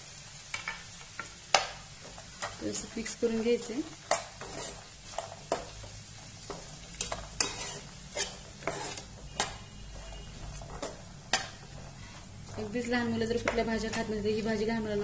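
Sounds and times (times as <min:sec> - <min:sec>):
faint sizzle: 0:00.0 - 0:15.0
metal spatula scraping frying pan: 0:04.1 - 0:05.7, 0:06.4 - 0:12.4.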